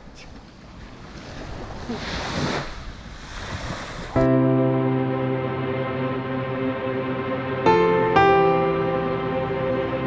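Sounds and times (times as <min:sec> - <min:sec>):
wind on microphone: 0:00.0 - 0:04.2
small waves washing onto shore: 0:00.3 - 0:04.2
calm music with held notes: 0:04.2 - 0:10.0.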